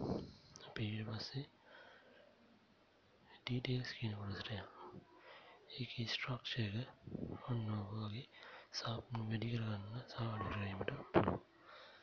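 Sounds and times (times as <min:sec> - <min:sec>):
person speaking: 0:03.4 - 0:11.4.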